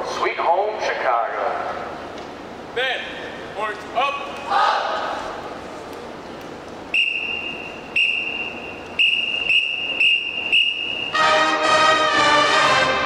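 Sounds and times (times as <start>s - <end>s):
whistle blasts: 6.9s - 11.6s
marching band brass: 9.0s - 13.0s.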